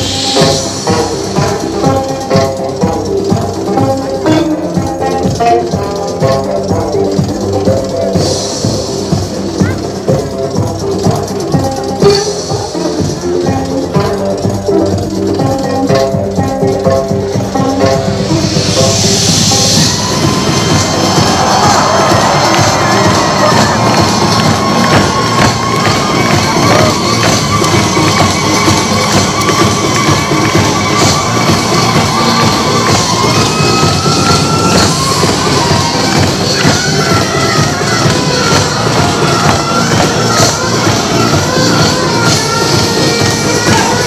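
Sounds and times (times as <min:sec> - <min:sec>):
folk-fusion music with fast drums: 0:00.0 - 0:44.0
audience cheering: 0:19.2 - 0:44.0.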